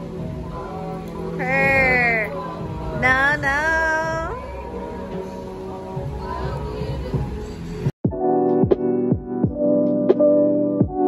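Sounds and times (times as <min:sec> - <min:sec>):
background music with low bass: 0:00.0 - 0:11.0
woman's high-pitched vocal glide: 0:01.4 - 0:02.4, 0:03.0 - 0:04.5.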